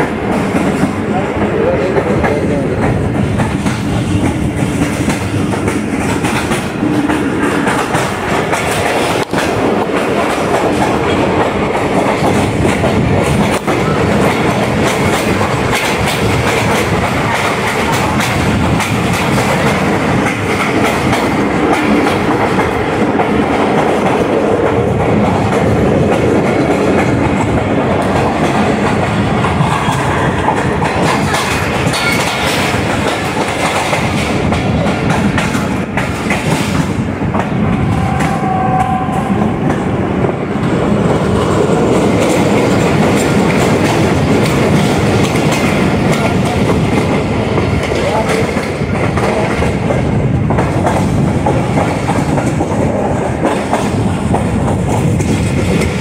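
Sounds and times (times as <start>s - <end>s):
clickety-clack over rail joints: 0.0s - 56.0s
train wheels rumbling on rails: 0.0s - 56.0s.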